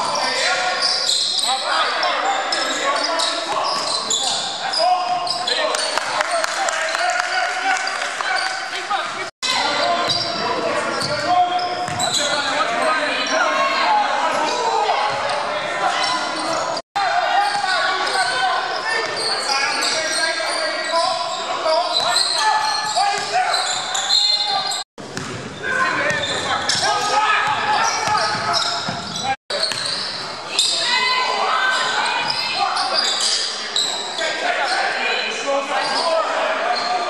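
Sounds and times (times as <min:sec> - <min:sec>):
players shouting and chatter: 0:00.0 - 0:37.0.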